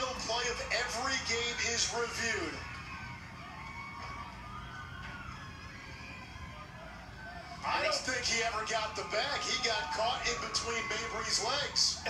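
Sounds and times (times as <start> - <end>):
faint music: 0.0 - 12.0
low hum from tv speaker: 0.0 - 12.0.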